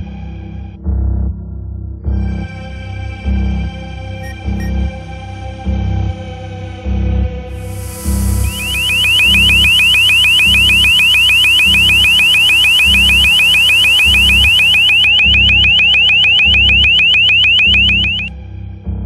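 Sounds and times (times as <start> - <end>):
electronic alarm chirps: 4.2 - 4.8, 7.7 - 18.3
music with pulsing beat: 4.2 - 4.8, 7.7 - 18.3.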